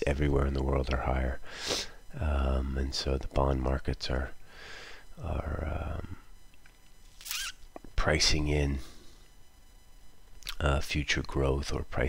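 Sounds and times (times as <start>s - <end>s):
man saying um: 2.1s - 4.3s, 5.2s - 6.2s.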